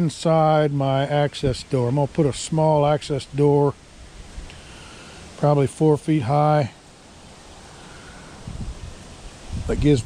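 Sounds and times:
outdoor background hiss: 0:00.0 - 0:10.0
wind rumble on microphone: 0:08.4 - 0:10.0.

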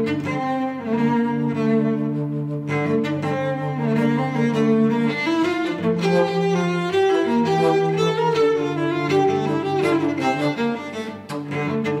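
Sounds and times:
bass flute: 0:00.0 - 0:10.8
cello: 0:00.0 - 0:12.0.

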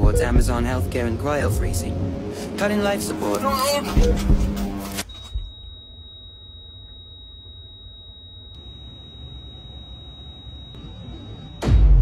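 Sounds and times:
heart monitor flatline tone: 0:00.0 - 0:00.8, 0:04.0 - 0:12.0.

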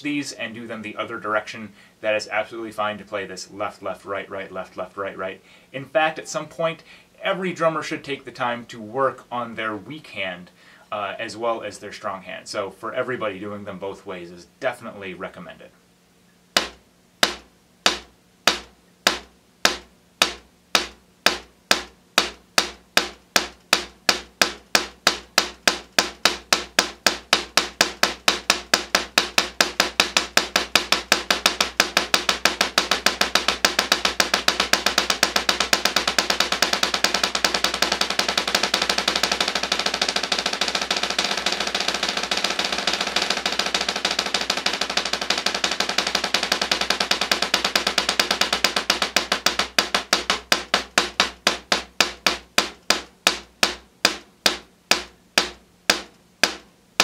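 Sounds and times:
drumsticks rolling on practice pad: 0:16.6 - 0:56.7.

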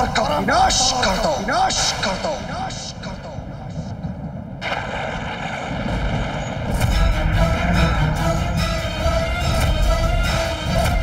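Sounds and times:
rumbling weapon charging effect: 0:04.6 - 0:08.8.

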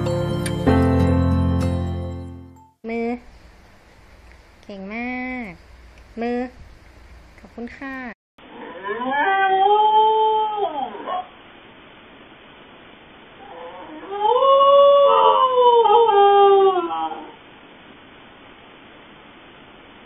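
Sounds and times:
dog howling: 0:08.5 - 0:11.3, 0:13.4 - 0:17.4.

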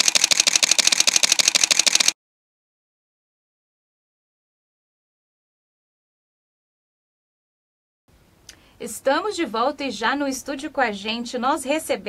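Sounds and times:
camera shutter burst: 0:00.0 - 0:02.2.

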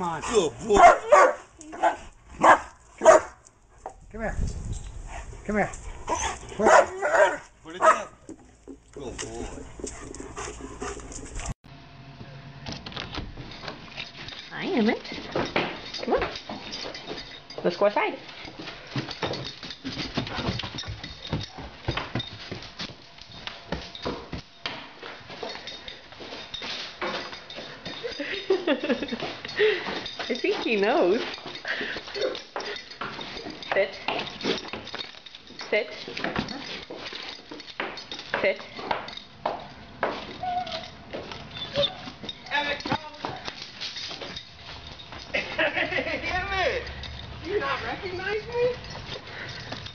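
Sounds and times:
dog claws clicking and rattling: 0:05.7 - 0:11.6, 0:13.4 - 0:24.6, 0:25.3 - 0:49.9
dog whining and yelping: 0:06.0 - 0:07.4, 0:40.3 - 0:42.2.

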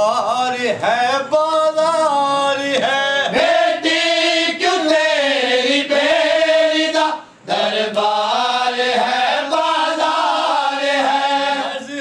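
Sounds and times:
man chanting a lament: 0:00.0 - 0:05.9, 0:06.6 - 0:12.0.

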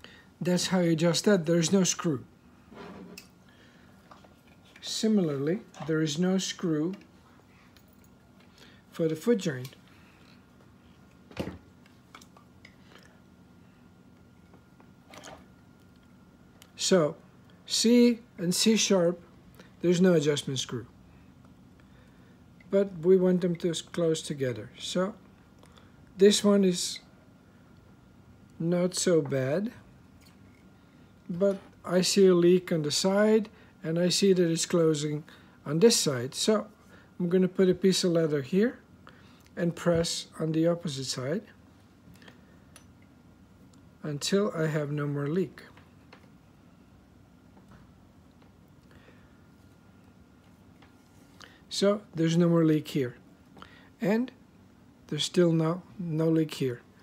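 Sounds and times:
low steady hum: 0:00.0 - 0:57.0.

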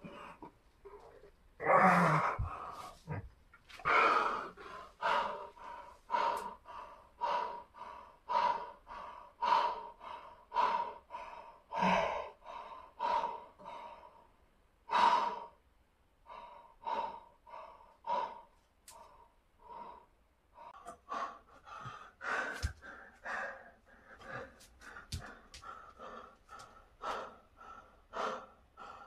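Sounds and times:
man breathing hard: 0:02.1 - 0:15.6, 0:16.2 - 0:29.0.

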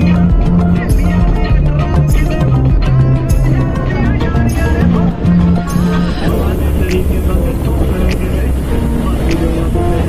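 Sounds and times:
moving vehicle rumble: 0:00.0 - 0:10.0.

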